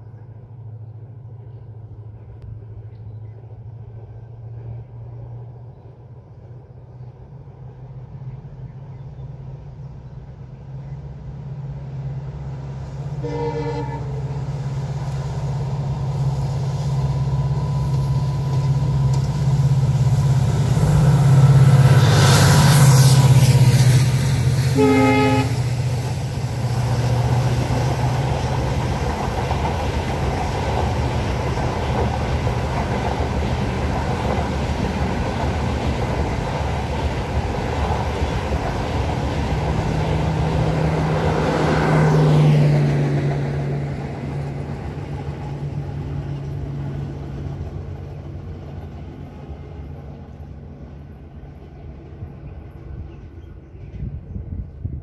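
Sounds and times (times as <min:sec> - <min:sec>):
diesel locomotive engine drone: 0:00.0 - 0:55.0
train wheels on rails: 0:06.5 - 0:55.0
train horn blast: 0:13.2 - 0:14.5, 0:24.7 - 0:25.9.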